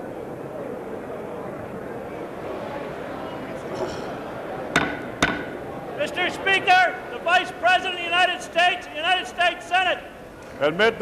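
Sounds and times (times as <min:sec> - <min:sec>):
wooden gavel strike: 0:04.8 - 0:05.6.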